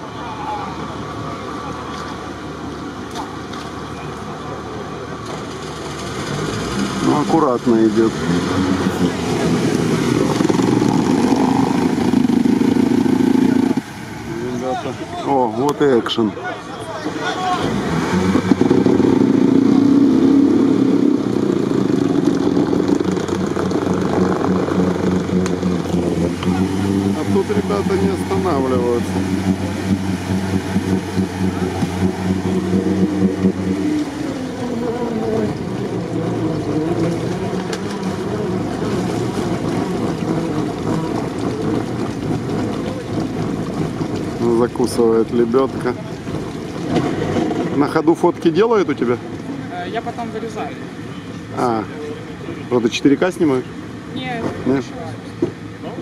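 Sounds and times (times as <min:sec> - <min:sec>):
vehicle churning through water: 0:00.0 - 0:56.0
engine at high revs: 0:04.4 - 0:56.0.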